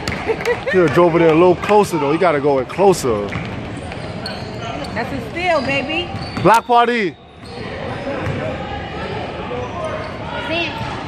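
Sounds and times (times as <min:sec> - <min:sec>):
basketball bouncing on wooden court: 0:05.6 - 0:06.5.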